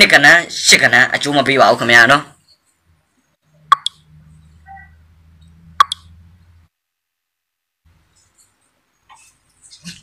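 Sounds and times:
sharp pops: 3.7s - 4.0s.

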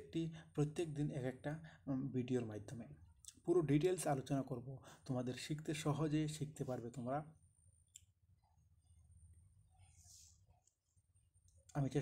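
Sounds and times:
person speaking: 0.0s - 7.5s.

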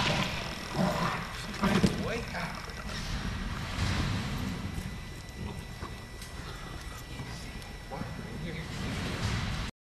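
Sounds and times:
room noise: 0.0s - 9.7s.

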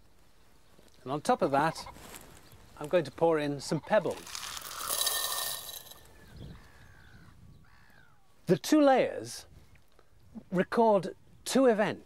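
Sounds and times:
pebbles rattling into glass jar: 4.1s - 6.1s.

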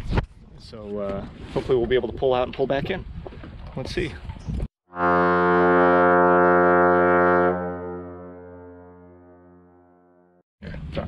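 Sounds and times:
long low horn note: 4.9s - 10.4s.

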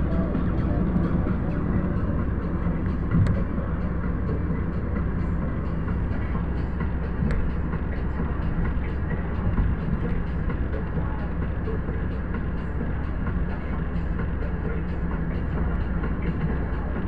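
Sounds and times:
car road and engine noise: 0.0s - 17.0s.

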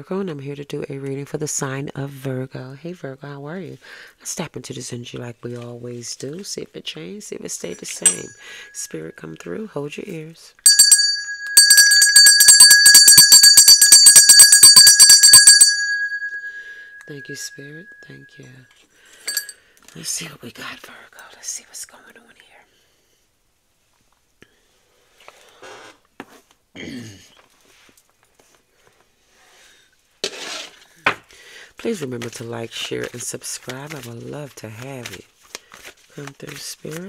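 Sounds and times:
small bell ringing rapidly: 8.0s - 8.9s, 10.6s - 18.4s, 19.3s - 19.6s
cards rustling: 31.8s - 37.0s.

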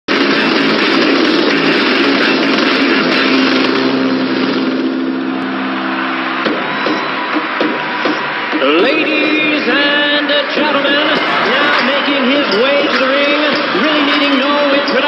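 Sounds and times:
film soundtrack music: 0.2s - 10.1s.

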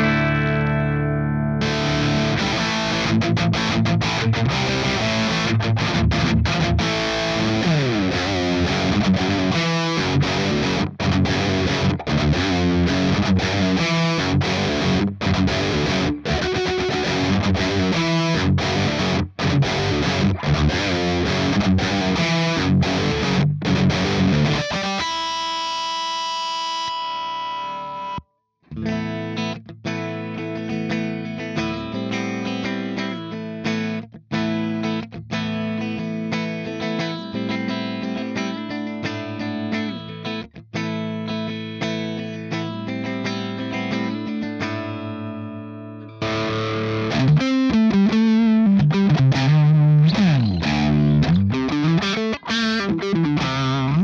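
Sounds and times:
distorted electric guitar: 0.0s - 54.0s.

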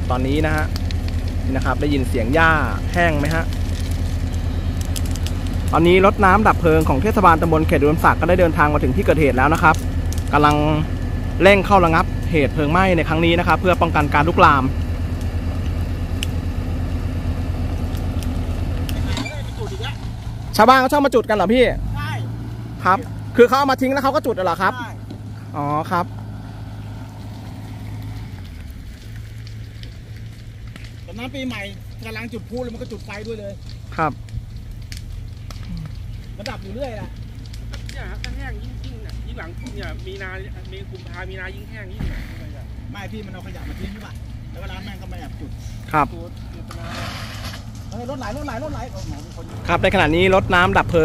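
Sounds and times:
fire truck engine idling: 0.0s - 51.0s.

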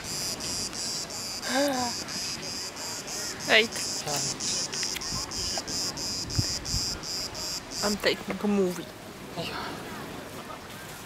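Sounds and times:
cicadas pulsing buzz: 0.0s - 8.2s.

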